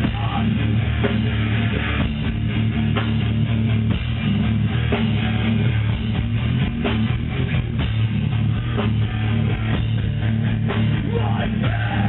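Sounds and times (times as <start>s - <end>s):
heavy guitar and bass chords: 0.0s - 12.0s.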